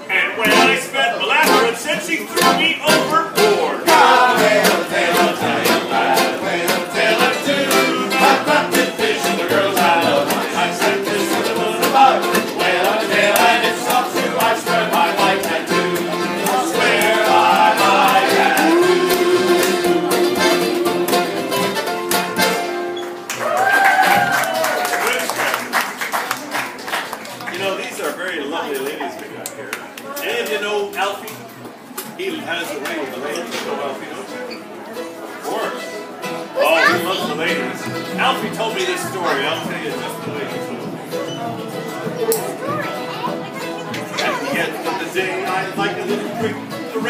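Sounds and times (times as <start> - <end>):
acoustic band playing a sea shanty: 0.0 - 28.2, 30.8 - 47.0
single voice singing: 0.1 - 21.4, 44.2 - 47.0
men singing along: 1.4 - 21.1, 44.6 - 47.0.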